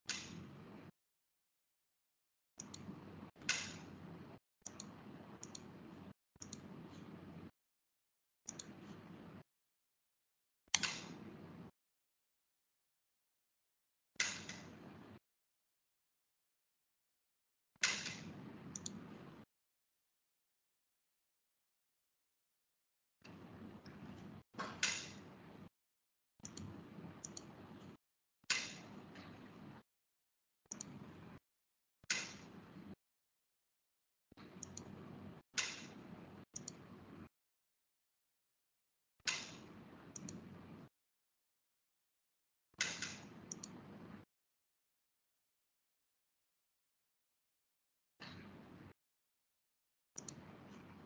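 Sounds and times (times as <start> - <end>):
small sharp clicks: 0.1 - 0.6, 2.6 - 7.5, 8.5 - 8.8, 10.8 - 11.7, 14.2 - 15.0, 17.8 - 19.4, 23.2 - 25.7, 26.4 - 29.8, 30.7 - 31.4, 32.0 - 32.7, 34.4 - 37.3, 39.2 - 40.9, 42.8 - 44.3, 50.2 - 51.0
sharp clicks: 2.6 - 4.0, 4.7 - 5.7, 6.4 - 6.7, 10.8 - 11.2, 30.7 - 31.1, 39.3 - 40.5, 42.8 - 44.0, 50.2 - 50.5.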